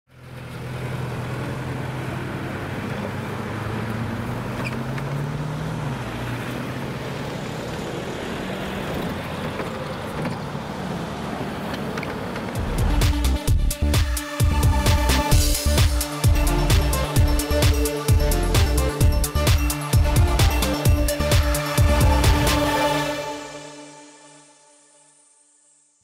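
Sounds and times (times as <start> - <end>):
bus engine running: 0.1 - 23.8
electronic music with a beat: 12.6 - 24.3.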